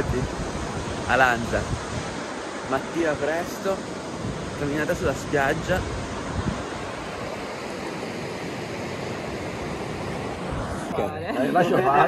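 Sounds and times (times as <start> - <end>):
surf breaking on sandy beach: 0.0 - 12.0.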